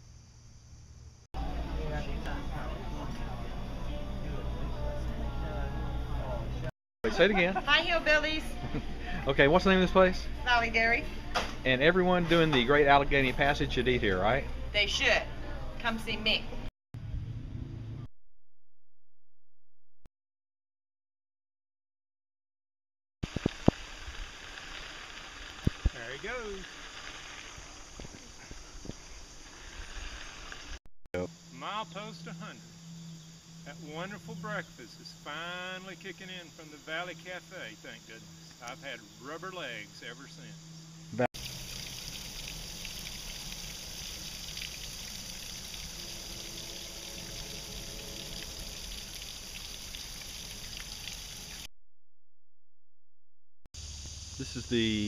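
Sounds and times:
water trickling down rock: 23.3 - 28.2, 41.4 - 51.7.

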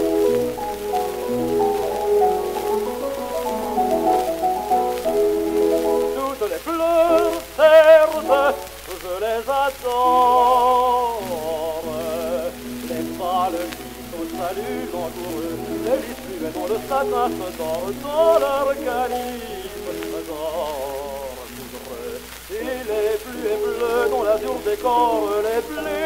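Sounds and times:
piano chords: 0.0 - 9.1, 10.0 - 26.0
man singing with vibrato: 0.0 - 26.0
record surface noise: 0.0 - 26.0.

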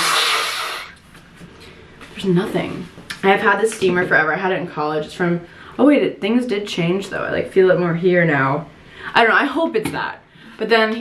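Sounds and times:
woman blowing her nose: 0.0 - 1.0.

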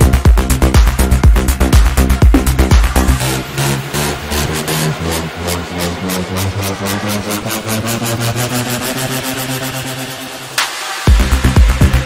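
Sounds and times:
house music with rolling bass: 0.0 - 12.0
ticking hi-hat: 0.0 - 12.0.

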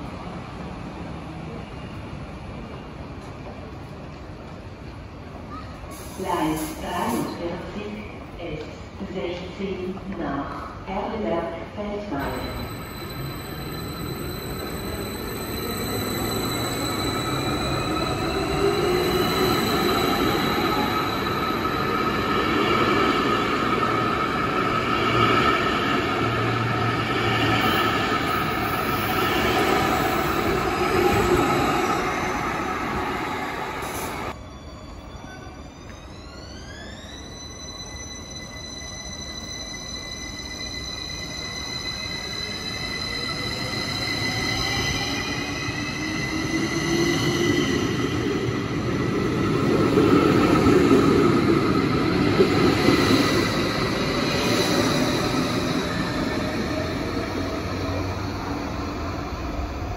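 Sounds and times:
train wheels rumbling and squealing: 12.1 - 59.9.

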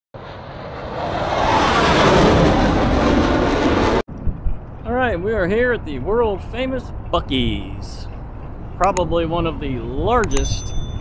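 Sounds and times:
loud rushing whoosh: 0.2 - 4.9
parking lot ambience: 4.1 - 11.0.

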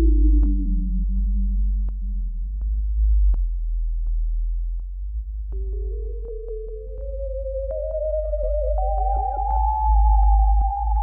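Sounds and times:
synthesizer deep bass tone: 0.0 - 11.0.

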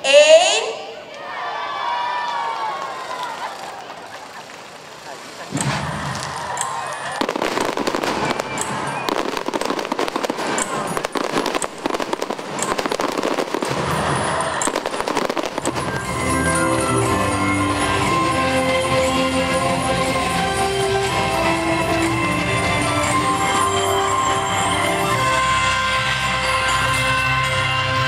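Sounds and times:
crowd voices: 0.0 - 28.0
fireworks crackling and banging: 2.8 - 27.1.

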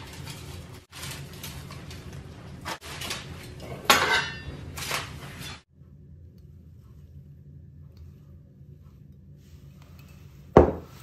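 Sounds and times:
foil and paper towel crinkling: 0.0 - 3.6, 4.6 - 5.6.

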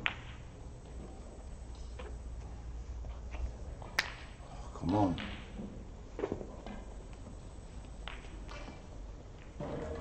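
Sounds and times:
snooker balls rolling: 0.0 - 10.0
snooker balls striking: 5.1 - 6.9.

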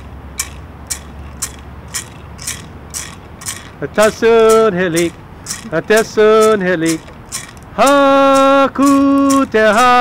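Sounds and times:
gourd rattle shaken in a beat: 0.0 - 10.0
man singing: 3.8 - 7.0, 7.8 - 10.0.

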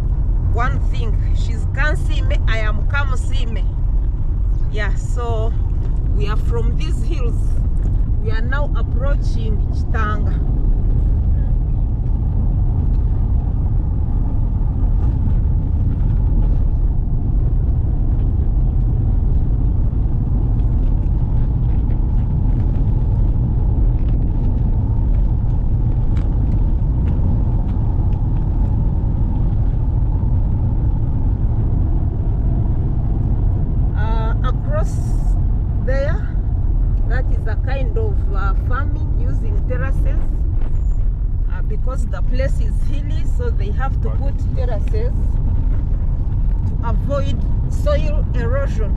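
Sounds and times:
car driving on dirt road: 0.0 - 48.9
people talking: 0.5 - 3.7, 4.7 - 7.5, 8.2 - 10.4, 34.0 - 36.3, 37.1 - 40.3, 41.5 - 45.2, 46.8 - 48.9.

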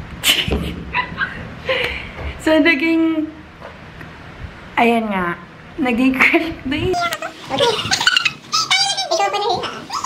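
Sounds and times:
woman laughing: 0.3 - 1.9.

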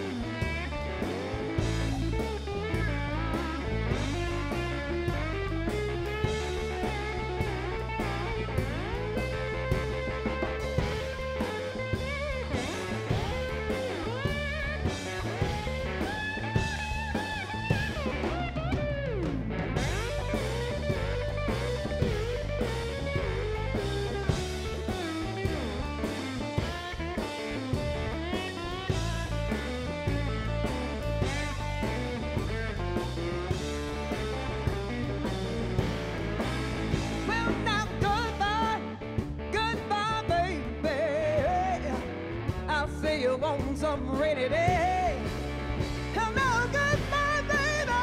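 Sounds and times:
bass: 0.0 - 48.0
drum kit beat: 0.0 - 48.0.

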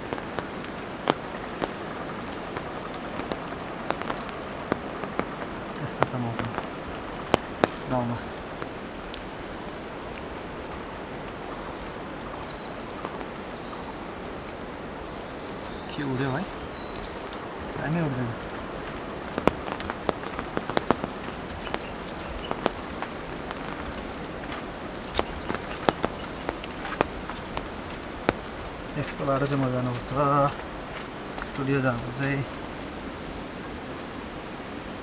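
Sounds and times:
light rain hiss: 0.0 - 35.0
raindrops tapping close by: 0.0 - 35.0.

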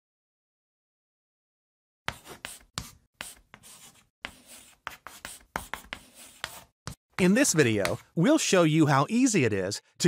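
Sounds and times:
chalk scratching on blackboard: 2.1 - 8.1.

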